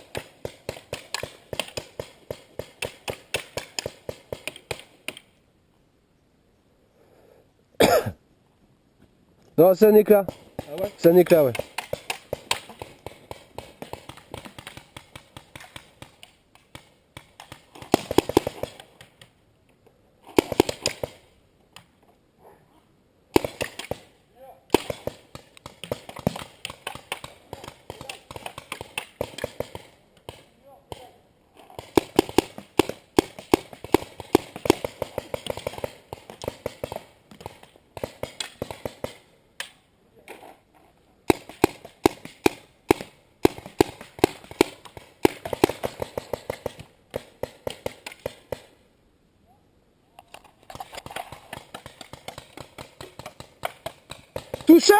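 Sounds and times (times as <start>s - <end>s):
paintball markers firing: 20.3s - 21.2s, 31.8s - 39.8s.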